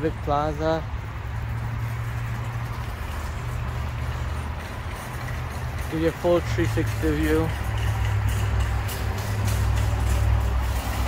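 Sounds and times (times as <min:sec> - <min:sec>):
road noise: 0:00.0 - 0:11.0
vehicle engines humming: 0:00.0 - 0:11.0.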